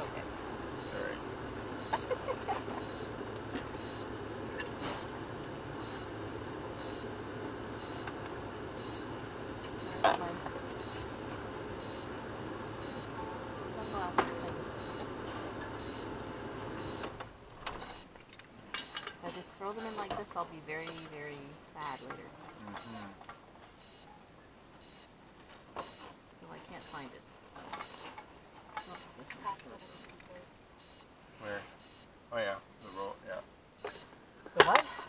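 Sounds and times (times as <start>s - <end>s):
vehicle engine idling: 0.0s - 17.5s.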